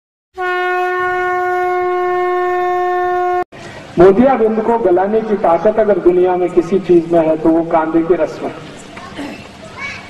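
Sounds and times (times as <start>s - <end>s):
horn-like tone: 0.4s - 3.4s.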